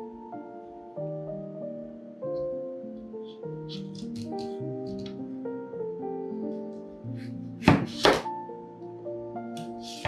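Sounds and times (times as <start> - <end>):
background music: 0.0 - 10.0
knife slicing carrot on board: 7.6 - 8.3.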